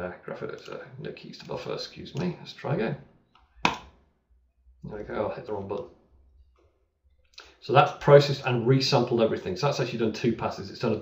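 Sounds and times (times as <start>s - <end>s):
speech: 0.0s - 3.0s, 4.8s - 6.0s, 7.5s - 11.0s.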